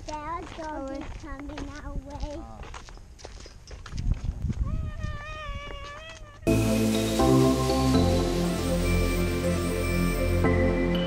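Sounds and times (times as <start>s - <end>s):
wind rumble on microphone: 3.8s - 6.1s
high-pitched call: 6.5s - 11.0s
loud music: 6.5s - 11.0s.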